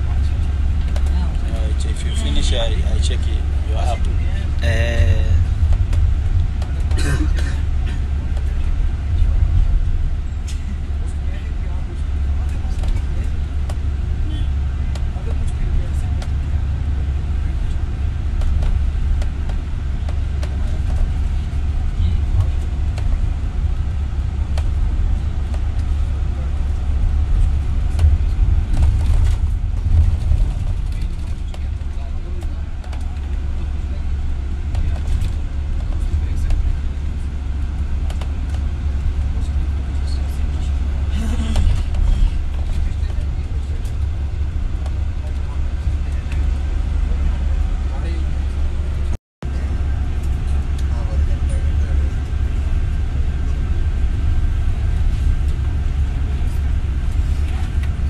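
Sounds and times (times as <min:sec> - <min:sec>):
road noise: 0:00.0 - 0:58.0
vehicle engine rumble: 0:00.0 - 0:58.0.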